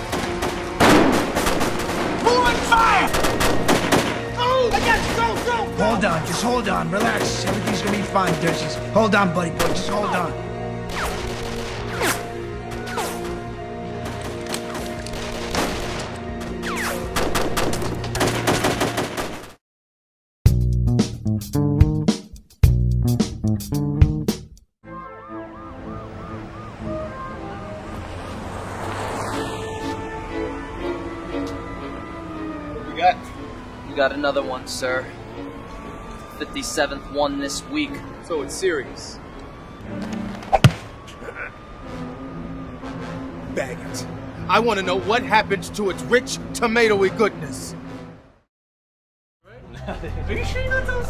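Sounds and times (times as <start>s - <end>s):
gunshots in rapid bursts: 0.0s - 2.2s, 3.1s - 4.2s, 17.1s - 19.6s
film music score: 0.0s - 19.5s, 20.5s - 48.4s.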